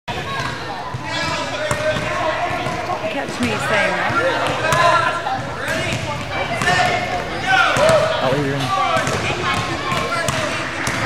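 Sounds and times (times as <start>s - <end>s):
children chattering: 0.1s - 11.0s
basketball bouncing: 0.3s - 7.1s, 8.9s - 11.0s.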